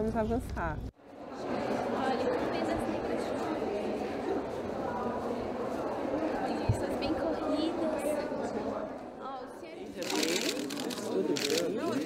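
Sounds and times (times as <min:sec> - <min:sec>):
women chatting: 0:00.0 - 0:10.2.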